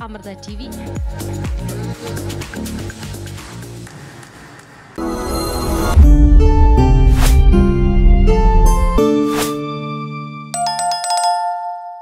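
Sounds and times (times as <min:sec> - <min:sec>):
bright chime-like notes: 0:10.6 - 0:12.0.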